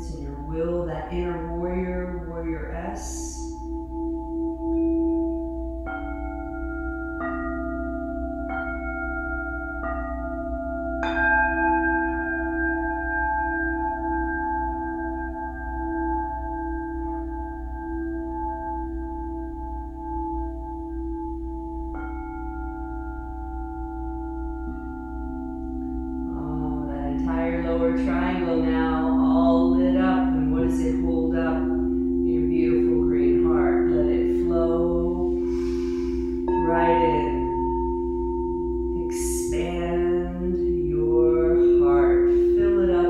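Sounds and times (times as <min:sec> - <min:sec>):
crystal singing bowls ringing: 0:00.0 - 0:43.0
singing bowl strikes: 0:03.4 - 0:26.4, 0:30.2 - 0:39.5.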